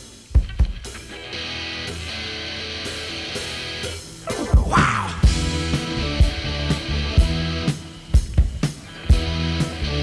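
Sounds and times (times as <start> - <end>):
guitar sustained chords: 1.4 - 7.7.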